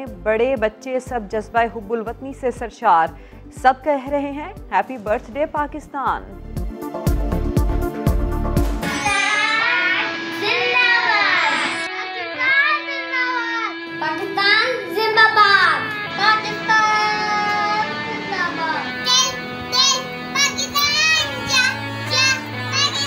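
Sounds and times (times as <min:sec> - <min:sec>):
backing music: 0:00.0 - 0:23.0
children singing: 0:20.4 - 0:23.0.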